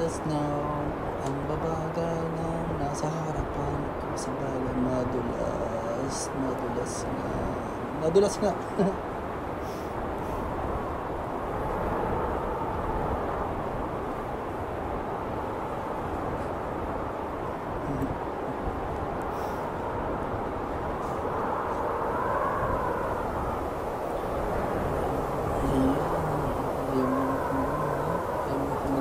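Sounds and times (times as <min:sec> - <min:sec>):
car engine drone: 0:09.6 - 0:29.0.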